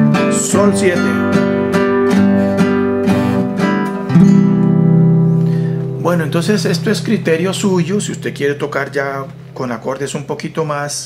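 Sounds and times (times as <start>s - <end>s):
classical guitar strumming: 0.0s - 11.0s.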